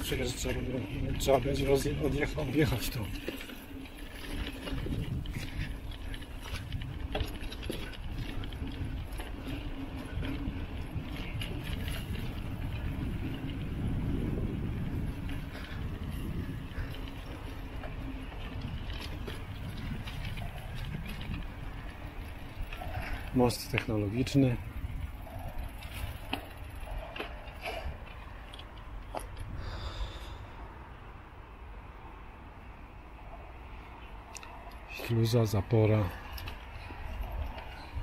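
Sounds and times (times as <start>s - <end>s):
light rattles and clicks: 0.0s - 29.6s, 34.3s - 38.0s
bicycle rolling on dirt track: 0.0s - 30.6s, 31.3s - 38.0s.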